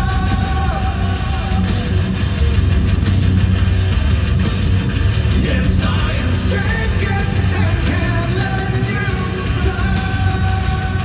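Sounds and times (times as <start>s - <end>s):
bass and drums: 0.0s - 11.0s
distorted electric guitars: 0.0s - 11.0s
heavy metal band playing: 0.0s - 11.0s.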